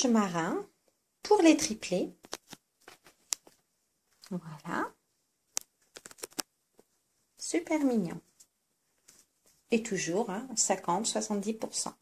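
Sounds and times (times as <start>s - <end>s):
handling rustles and clicks: 2.2s - 4.2s, 5.6s - 6.9s.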